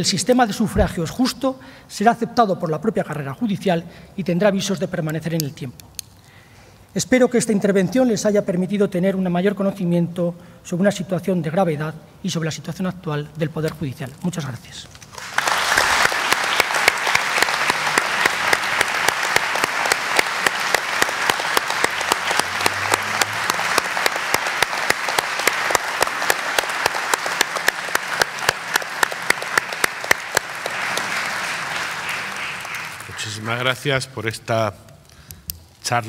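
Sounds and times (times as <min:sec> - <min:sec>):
audience applauding: 0:15.1 - 0:34.0.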